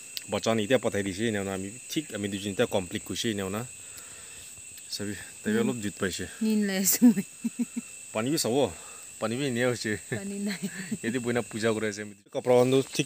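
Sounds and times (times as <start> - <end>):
insect chorus drone: 0.0 - 13.0
people talking: 0.2 - 3.7, 4.9 - 13.0.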